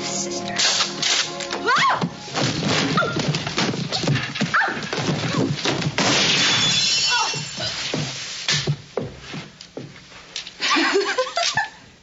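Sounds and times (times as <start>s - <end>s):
knocks and scuffling: 0.8s - 6.3s, 7.2s - 10.5s.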